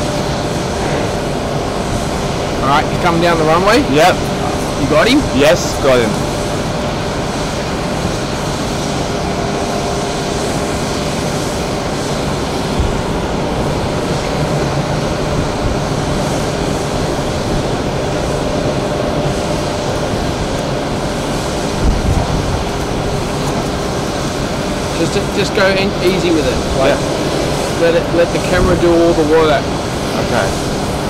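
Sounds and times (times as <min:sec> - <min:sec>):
faint engine whine: 0:00.0 - 0:31.0
jet engines running: 0:00.0 - 0:31.0.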